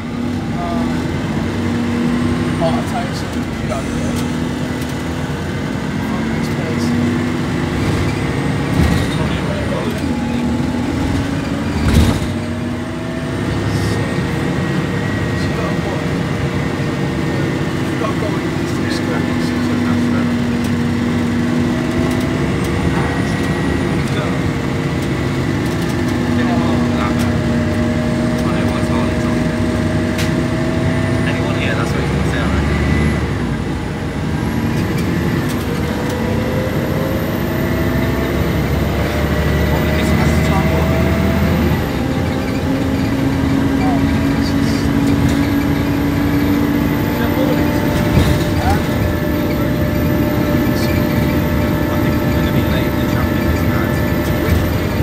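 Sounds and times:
bus diesel engine droning: 0:00.0 - 0:55.0.

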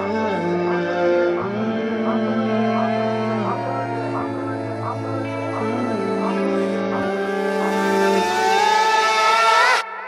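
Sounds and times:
music with held tones: 0:00.0 - 0:10.0.

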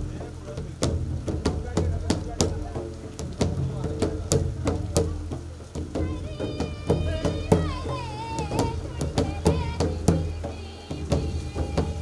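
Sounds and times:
hand drums beaten in rhythm: 0:00.0 - 0:12.0.

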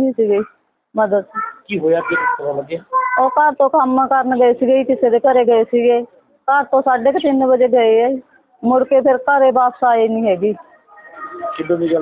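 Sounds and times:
woman talking: 0:00.0 - 0:01.4, 0:03.2 - 0:10.8.

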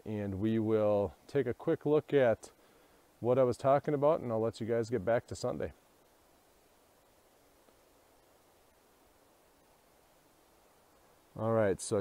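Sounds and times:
faint even hiss: 0:00.0 - 0:12.0.

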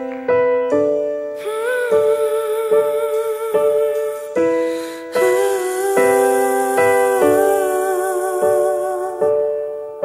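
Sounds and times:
piano chords: 0:00.0 - 0:10.0
woman singing long note: 0:01.4 - 0:09.6.

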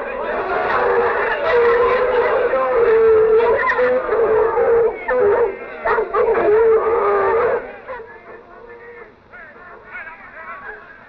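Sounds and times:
dogs baying and howling: 0:00.0 - 0:10.9.

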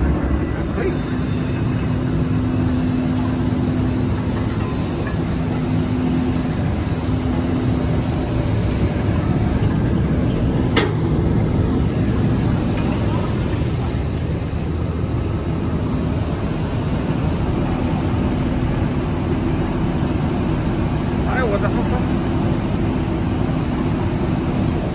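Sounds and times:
stuffing machine blower droning: 0:00.0 - 0:24.9.

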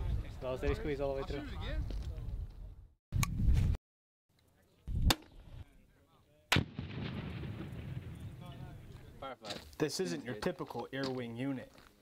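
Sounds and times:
grenade launcher blasts: 0:06.5 - 0:08.6.

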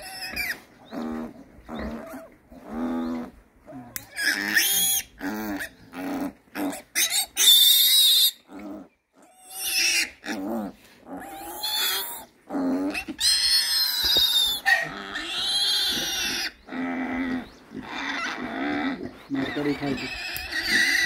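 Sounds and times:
piglet squealing: 0:00.0 - 0:02.3, 0:02.9 - 0:05.7, 0:06.6 - 0:08.6, 0:09.2 - 0:10.4, 0:11.2 - 0:12.3, 0:12.9 - 0:21.0.

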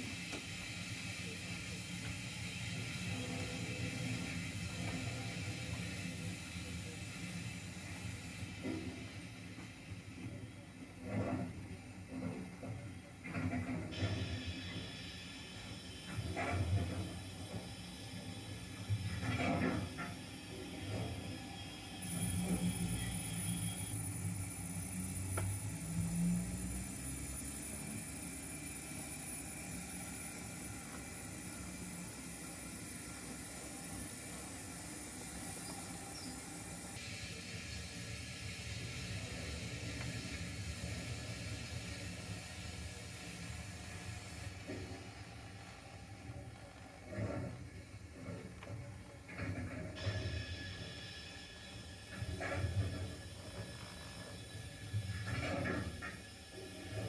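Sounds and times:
model train rumbling: 0:00.0 - 0:57.0.

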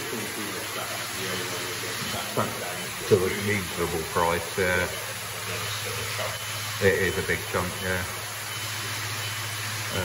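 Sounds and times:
pond pumps humming: 0:00.0 - 0:10.0.

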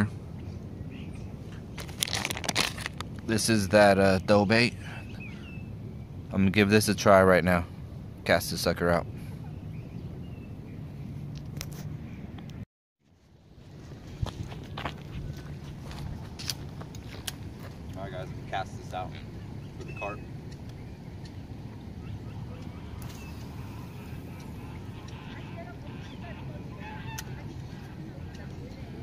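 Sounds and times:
distant voices: 0:14.4 - 0:29.0.

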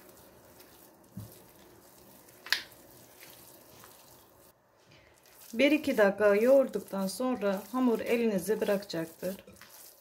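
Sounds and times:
dough squishing: 0:00.0 - 0:10.0.

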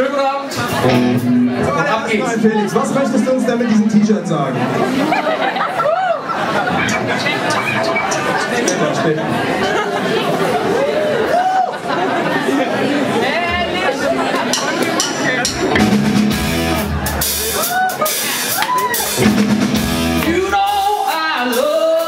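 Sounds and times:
live rock band playing: 0:00.0 - 0:08.8, 0:13.8 - 0:22.0
voices: 0:00.4 - 0:15.8.

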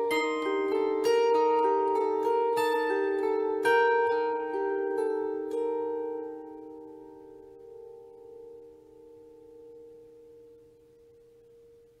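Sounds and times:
plucked bandura chord ringing: 0:00.0 - 0:10.7.

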